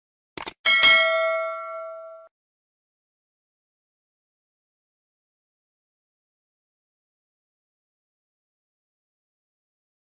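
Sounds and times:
bell-like ding: 0.7 - 2.3.

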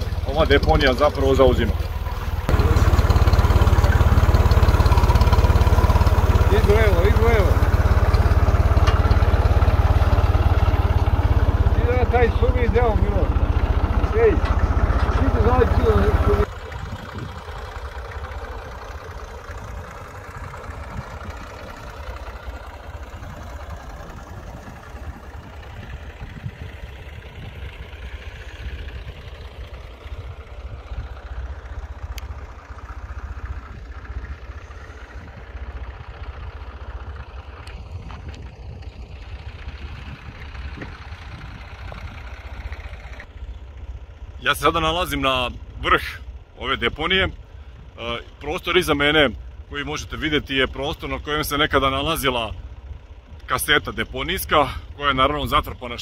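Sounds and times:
tractor engine running: 0.0 - 56.0.

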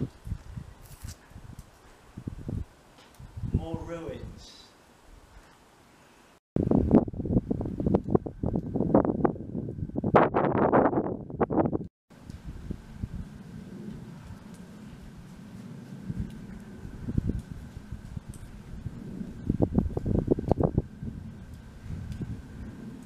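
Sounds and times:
wind buffeting microphone: 0.0 - 4.5, 6.6 - 23.0.

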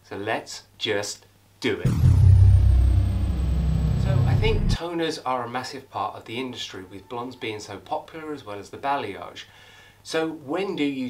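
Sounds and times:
deep bass rumble: 1.9 - 4.8
thin high tone dropping: 1.9 - 4.8.

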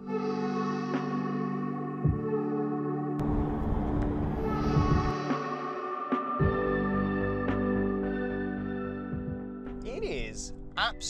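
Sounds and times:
music of sustained tones: 0.0 - 9.8.

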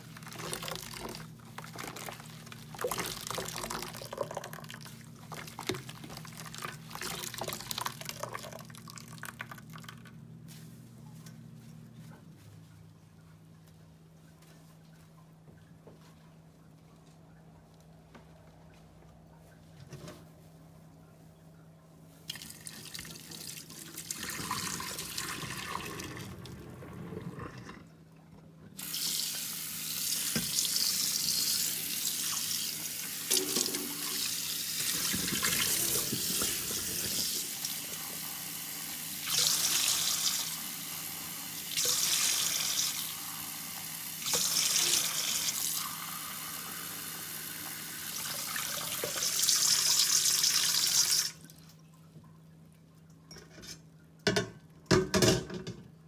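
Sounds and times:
tap water running into steel bowl: 33.2 - 37.8.

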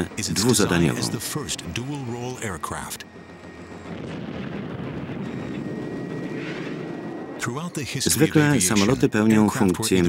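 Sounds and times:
man speaking: 0.0 - 3.0, 7.4 - 10.0
jet fighter roar: 3.9 - 7.4.

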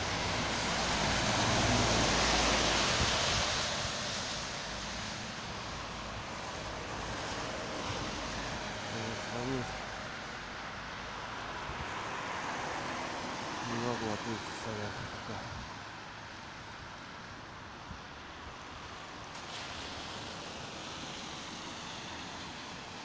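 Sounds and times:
traffic on a wet road: 0.0 - 23.0.

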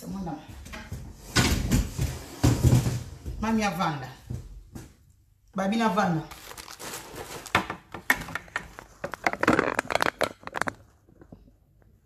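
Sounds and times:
crinkling crackling noise: 6.2 - 12.0.

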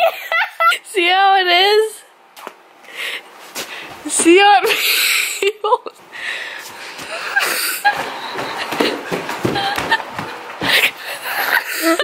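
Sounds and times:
people giggling: 0.0 - 0.8, 7.0 - 12.0.

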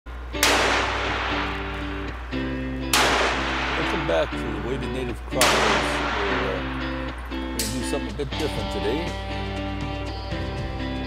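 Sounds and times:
background music: 0.1 - 11.0
revolver shots echoing: 0.4 - 7.9.

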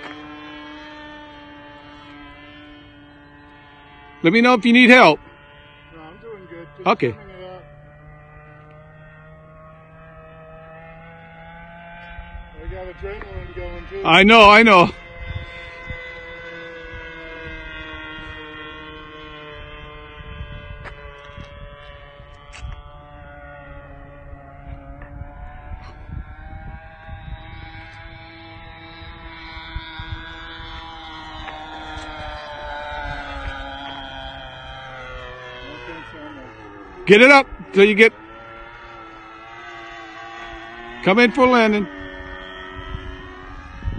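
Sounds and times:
model plane engine buzzing: 0.0 - 43.9.

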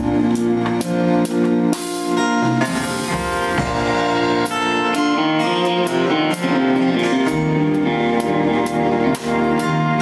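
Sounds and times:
band playing country-rock ballad: 0.0 - 10.0.

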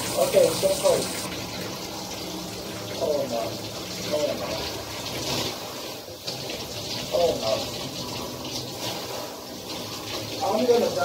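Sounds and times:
shower water splashing into bathtub: 0.0 - 11.0.

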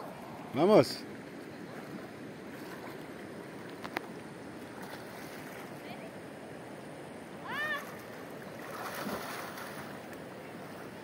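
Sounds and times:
water lapping: 0.0 - 6.2, 7.4 - 11.0
river water flowing: 0.0 - 11.0.

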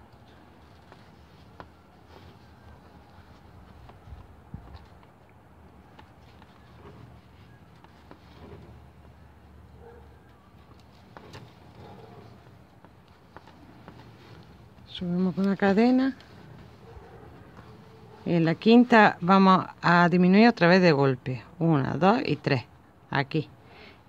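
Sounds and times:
crochet hook handling sounds: 0.0 - 19.4.

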